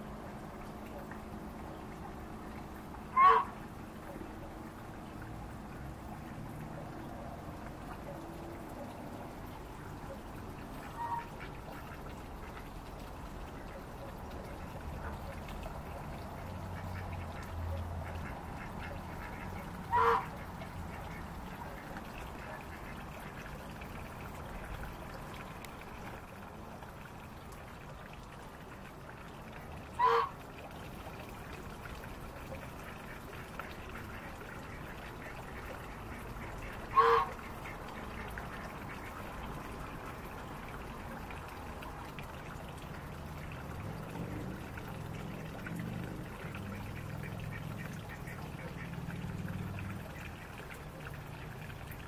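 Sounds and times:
goose honking: 3.1 - 3.6, 18.2 - 20.5, 30.0 - 30.3, 36.6 - 37.4.

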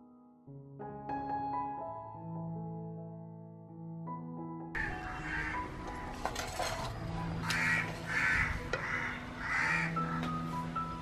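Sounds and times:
quiet background music: 0.0 - 11.0
crow cawing: 4.8 - 6.0, 7.5 - 10.2.

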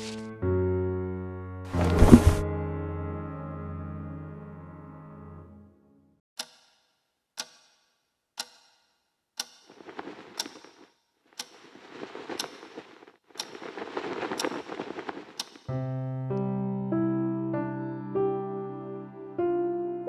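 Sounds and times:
piano music: 0.0 - 5.7, 15.7 - 20.0
clock ticking: 6.4 - 15.7.

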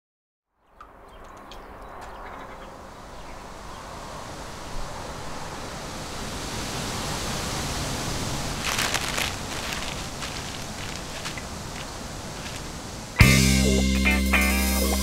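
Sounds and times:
rushing wind: 0.9 - 13.2
paper crackling: 8.5 - 12.8.

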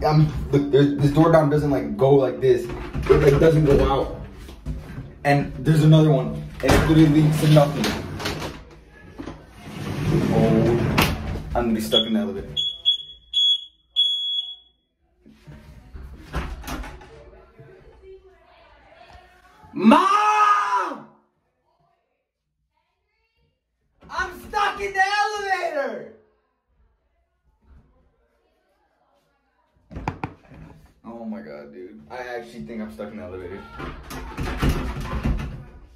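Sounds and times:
high-pitched electronic beeps: 12.0 - 14.7.

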